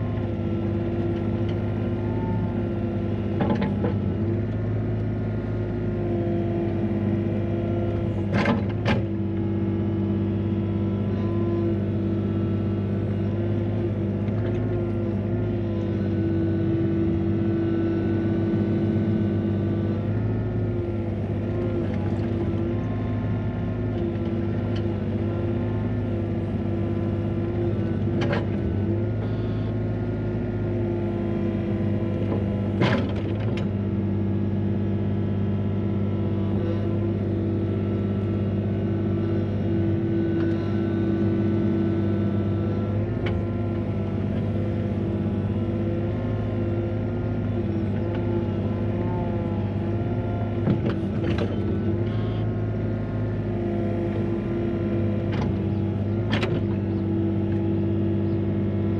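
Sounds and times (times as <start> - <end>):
excavator engine and hydraulics: 0.0 - 58.9.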